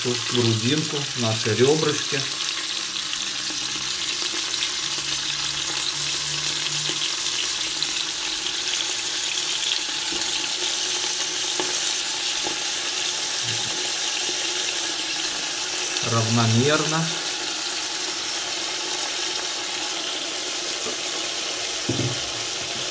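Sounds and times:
onion rings sizzling in oil: 0.0 - 22.9.

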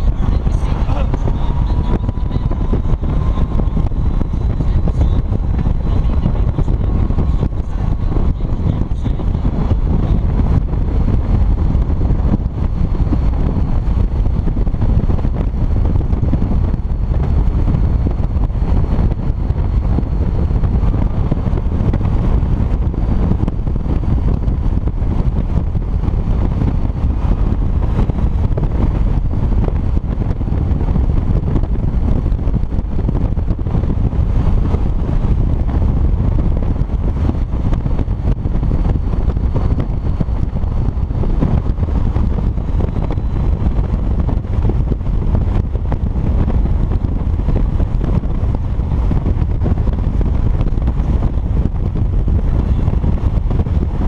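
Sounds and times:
motorcycle running: 0.0 - 54.0
wind rushing on microphone: 0.0 - 54.0.

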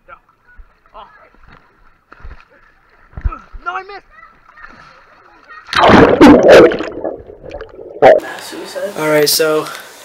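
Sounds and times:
pool water sloshing and splashing: 0.1 - 8.4.

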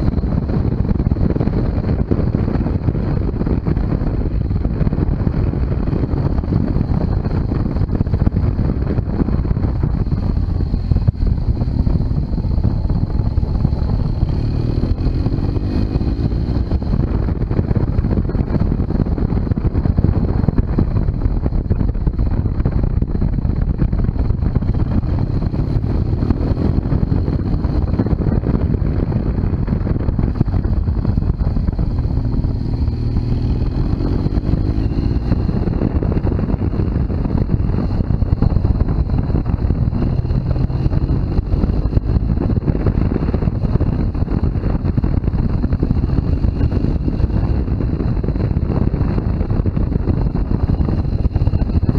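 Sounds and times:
motorcycle engine running: 0.0 - 51.9
road and wind noise: 0.0 - 51.9.

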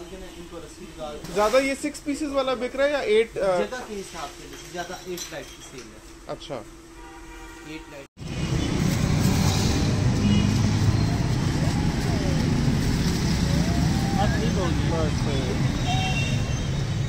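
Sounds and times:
voices calling: 10.4 - 16.7.

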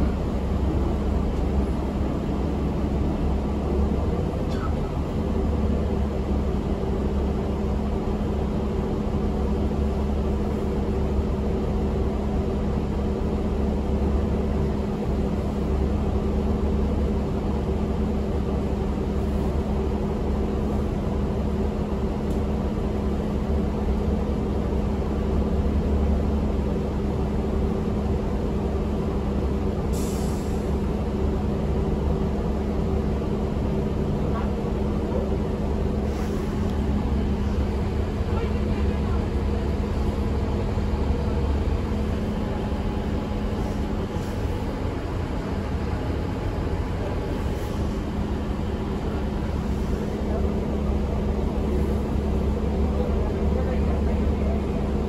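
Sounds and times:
bus engine rumble: 0.0 - 55.0.

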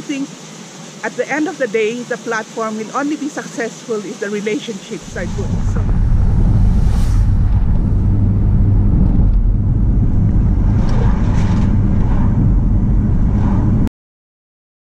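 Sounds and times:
vehicle engine and road rumble: 4.5 - 13.9.

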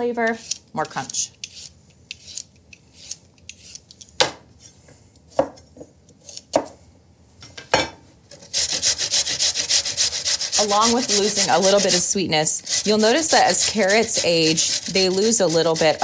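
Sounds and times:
carrot rasping on metal grater: 8.4 - 16.0.

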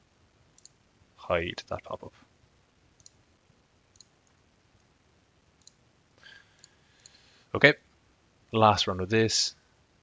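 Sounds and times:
faint computer mouse clicks: 0.6 - 0.8, 3.0 - 3.2, 3.9 - 4.9, 5.6 - 5.8, 6.6 - 7.2.

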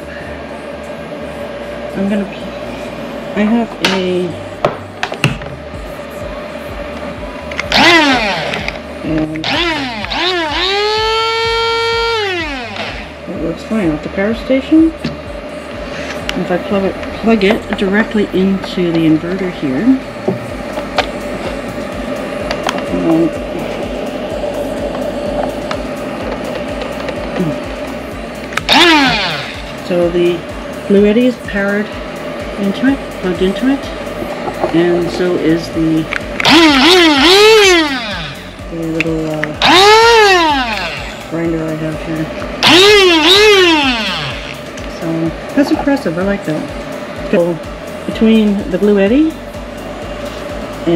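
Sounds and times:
inverter electrical hum: 0.0 - 50.9
blade grinder motor whining: 7.6 - 13.4, 28.5 - 30.0, 36.1 - 41.6, 42.3 - 44.9.

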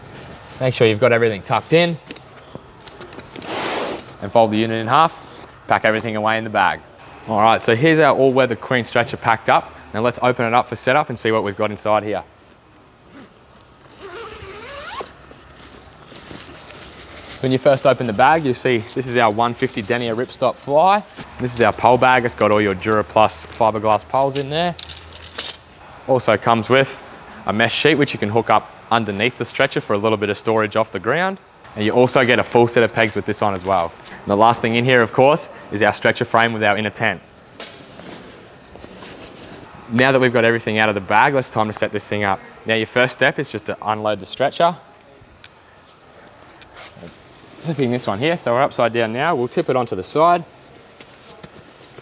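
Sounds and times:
handling sounds: 0.0 - 4.2, 12.4 - 20.4, 21.0 - 25.8, 50.6 - 52.0
fabric rustling: 12.8 - 21.3
zipper pulled open: 13.0 - 13.4, 14.0 - 15.2, 46.6 - 47.2.

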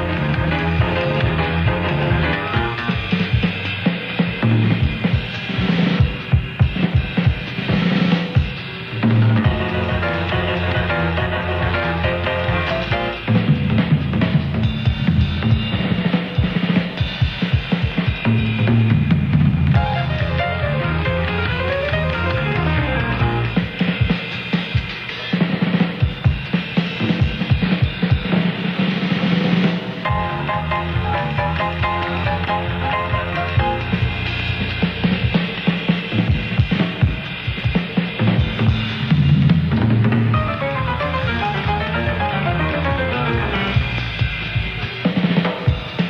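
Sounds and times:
low bass notes: 0.0 - 3.4, 9.0 - 14.6, 18.6 - 23.6, 30.1 - 35.1, 39.2 - 44.7
jazz band playing: 0.0 - 16.9, 18.3 - 24.2, 29.3 - 37.2, 38.2 - 46.0
drum kit snare and bass drum: 0.0 - 46.0.

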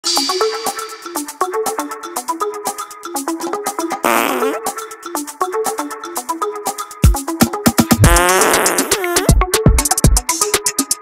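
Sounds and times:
bright synth backing track: 0.0 - 11.0
fart sound effect: 4.0 - 4.6, 8.0 - 9.4.

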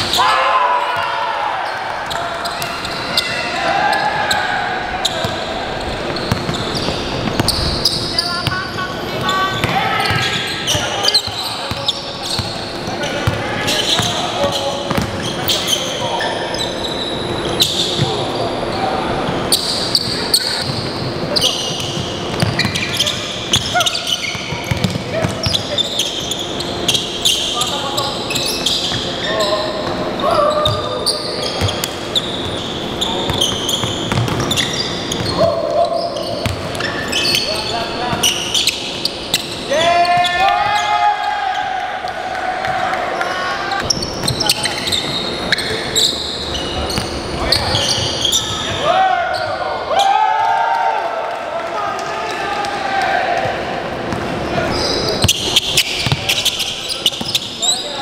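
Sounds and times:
players calling out: 0.0 - 58.0
basketball bouncing on hardwood floor: 22.3 - 22.8, 24.6 - 25.5, 33.8 - 34.5, 56.0 - 56.2.

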